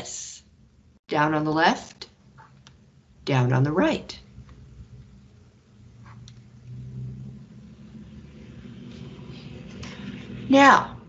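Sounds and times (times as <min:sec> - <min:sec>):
low background hum and rumble: 0:00.0 - 0:11.0.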